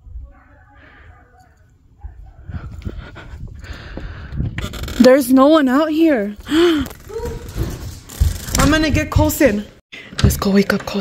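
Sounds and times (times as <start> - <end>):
breathing: 0.8 - 1.5, 2.4 - 4.6, 6.4 - 7.0, 9.9 - 10.2
footsteps on wooden deck: 7.5 - 9.6.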